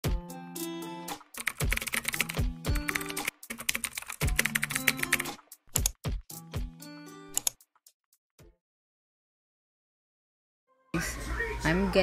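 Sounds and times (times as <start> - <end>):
upbeat tune with bass beat: 0.0 - 7.7
keyboard typing clicks: 1.4 - 6.0, 7.4 - 7.6.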